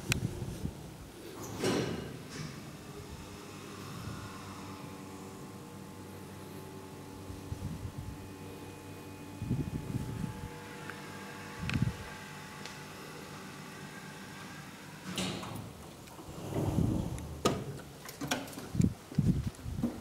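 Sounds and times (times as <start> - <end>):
hydraulic elevator humming: 1.3 - 18.1.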